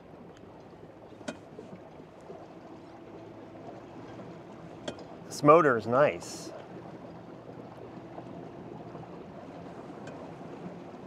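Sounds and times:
electric outboard motor hum: 0.0 - 11.0
water rushing along boat hull: 0.0 - 11.0.

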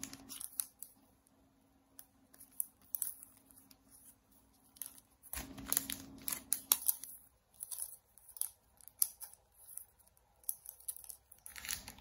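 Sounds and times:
plastic wrapping crinkling: 0.0 - 1.0, 2.4 - 12.0.

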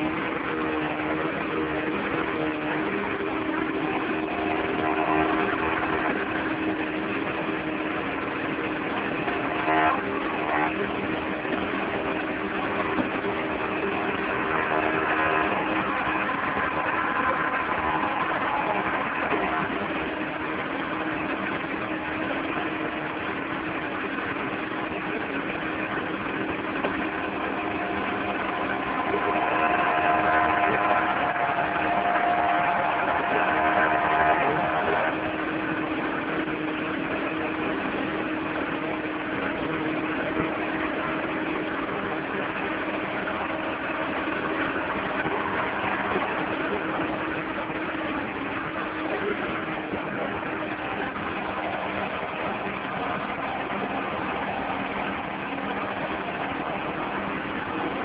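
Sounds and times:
engine running: 0.0 - 58.0.

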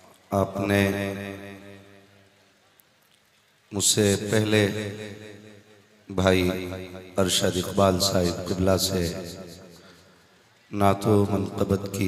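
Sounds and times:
man chanting into a microphone: 0.3 - 1.6, 3.7 - 5.3, 6.1 - 9.9, 10.7 - 12.0.

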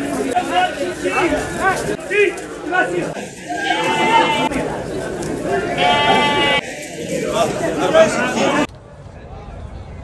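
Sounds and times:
goat bleating: 3.4 - 4.6, 5.7 - 6.6.

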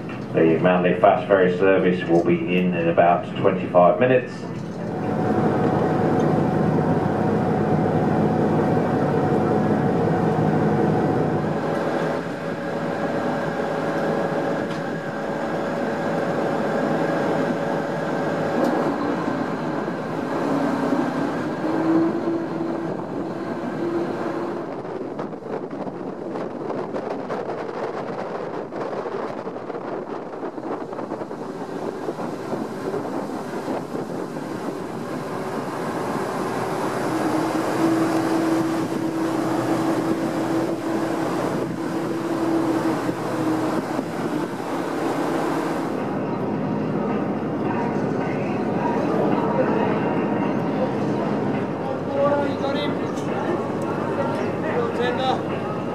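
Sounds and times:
ferry engines droning: 0.0 - 55.9
wind: 0.0 - 55.9
rushing water: 1.1 - 55.9.

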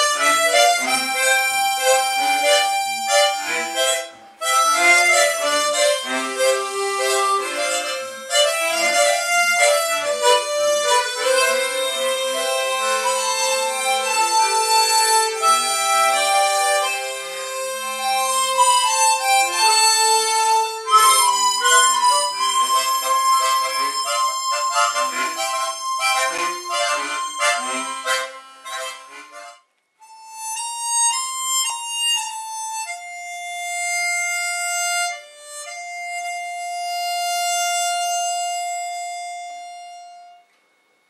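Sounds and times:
harmonica ensemble playing chords: 0.0 - 40.6
harmonicas playing slow melody: 0.0 - 41.0.

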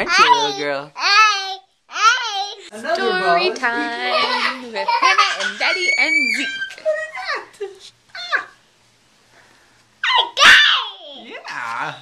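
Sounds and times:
toddler laughing squeal: 5.1 - 7.4.

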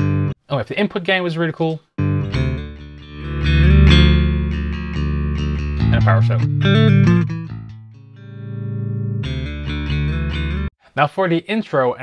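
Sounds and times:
bass guitar notes: 0.0 - 0.4, 2.0 - 10.7.

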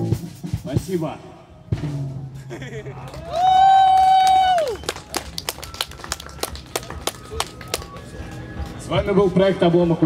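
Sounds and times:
scattered hand claps: 3.0 - 8.5.

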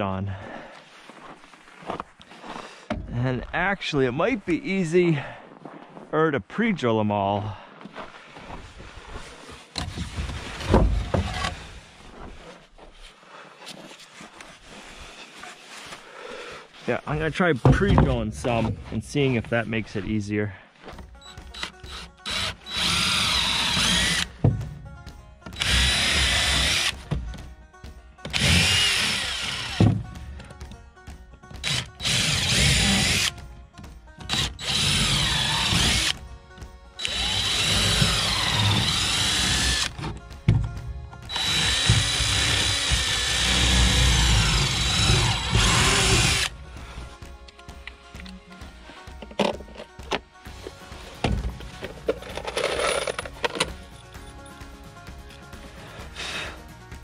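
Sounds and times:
cordless drill boring into wood: 21.5 - 24.4, 25.5 - 27.0, 28.3 - 29.9, 31.6 - 33.3, 34.3 - 36.2, 37.0 - 40.0, 41.3 - 46.5.

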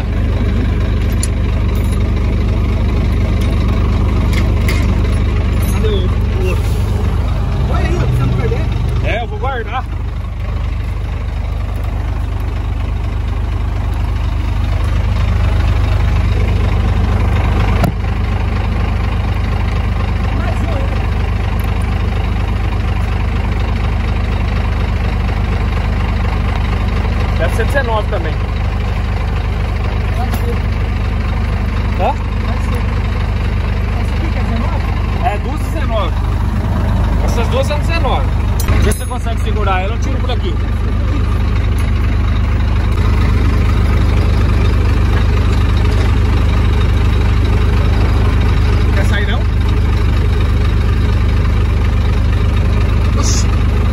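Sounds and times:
truck engine idling: 0.0 - 53.9.

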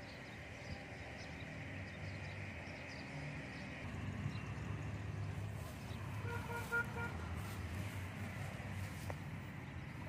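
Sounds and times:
vehicle horn beeping: 6.2 - 7.7.

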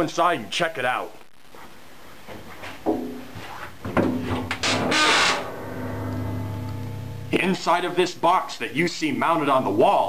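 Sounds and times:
steady low hum: 2.8 - 8.7
metal door creaking and scraping: 3.9 - 7.6.

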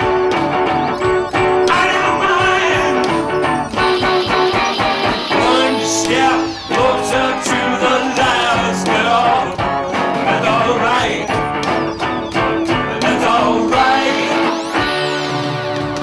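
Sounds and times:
live rock band playing: 0.0 - 16.0.

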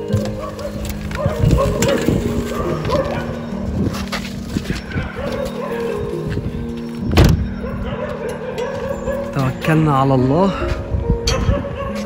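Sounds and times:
background music with held notes: 0.0 - 12.0
car door thud: 7.1 - 7.4.

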